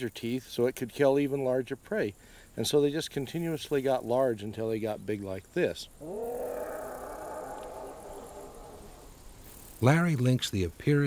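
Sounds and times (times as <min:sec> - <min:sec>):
big cat roaring: 0:06.0 - 0:09.3.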